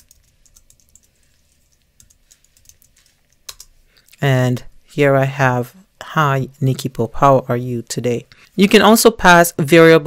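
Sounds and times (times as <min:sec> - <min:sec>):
faint computer keyboard clicks: 0:02.0 - 0:03.7.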